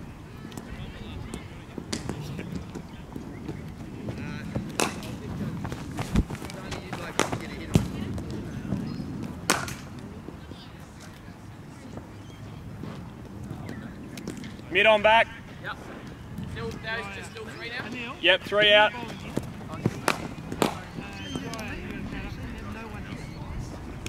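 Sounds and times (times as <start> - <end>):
cricket ball on bat cracks: 4.7 - 5.2, 6.0 - 7.9, 9.4 - 9.9, 19.8 - 21.6.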